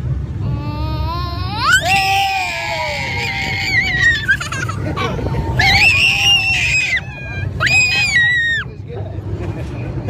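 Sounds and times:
roller coaster rumble: 0.0 - 10.0
roller coaster riders screaming: 0.5 - 8.8.

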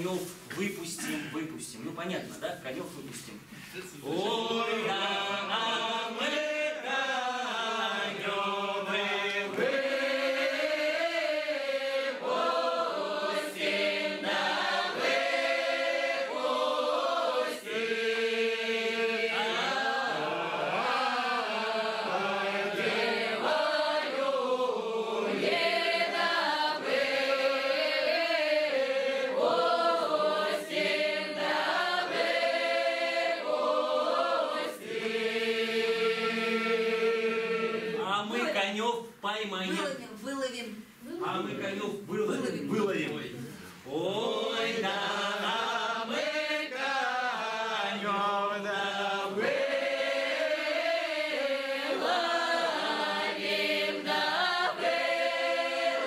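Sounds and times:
mixed choir singing unaccompanied: 4.0 - 38.8, 43.9 - 56.0.

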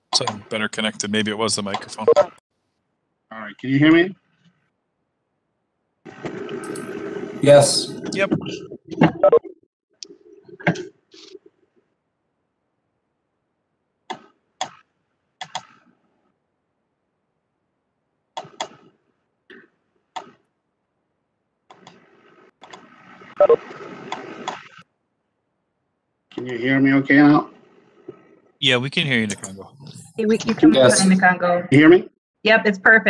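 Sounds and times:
faint muffled noise: 0.2 - 2.3, 3.3 - 4.1, 6.6 - 9.4, 26.4 - 27.4, 28.6 - 32.0.

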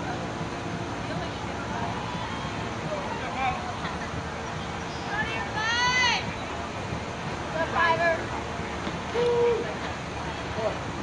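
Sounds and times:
faint outdoor chatter: 0.0 - 11.0.

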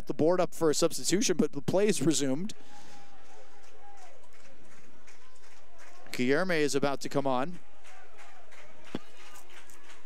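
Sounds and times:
stadium crowd: 1.8 - 10.0.

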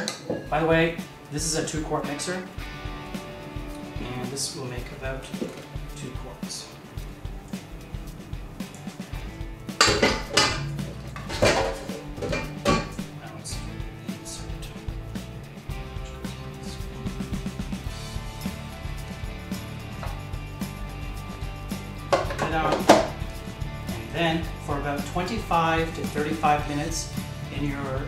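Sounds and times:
background music: 0.0 - 28.0.

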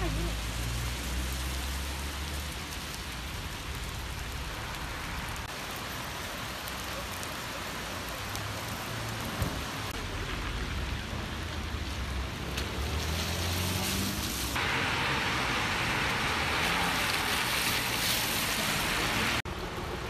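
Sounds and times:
rain falling on road: 0.0 - 20.0.

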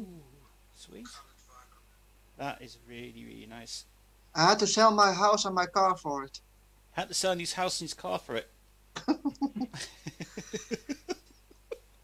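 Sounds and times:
hearty laughter: 9.7 - 11.8.

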